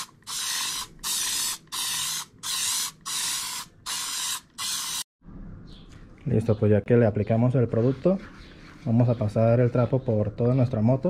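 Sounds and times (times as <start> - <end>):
aerosol spray can blasts: 0.0 - 5.1.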